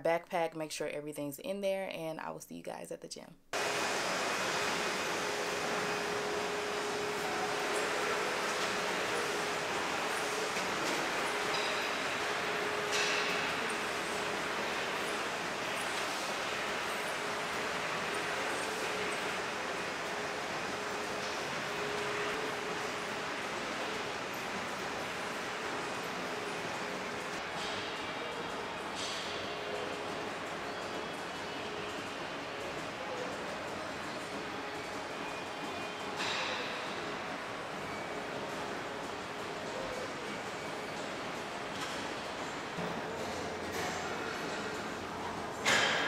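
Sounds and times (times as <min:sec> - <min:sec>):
faint constant hum: 0:00.0 - 0:46.0
rushing ventilation noise: 0:03.5 - 0:46.0.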